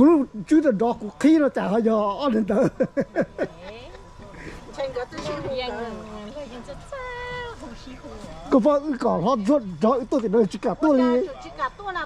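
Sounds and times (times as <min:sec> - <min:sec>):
people talking loudly: 0:00.0 - 0:12.0.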